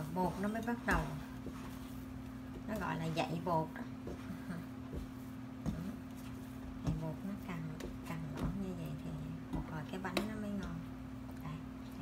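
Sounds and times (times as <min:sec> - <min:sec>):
dough thumping and squishing: 0:00.0 - 0:11.4
steady low hum: 0:00.0 - 0:12.0.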